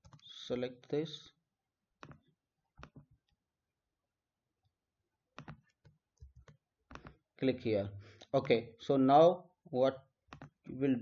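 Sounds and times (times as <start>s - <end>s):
computer mouse clicks: 5.4s - 7.2s, 10.3s - 10.7s.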